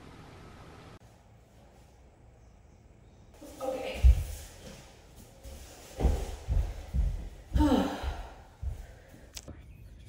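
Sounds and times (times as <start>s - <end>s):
footsteps on hardwood floor: 3.4s - 9.3s.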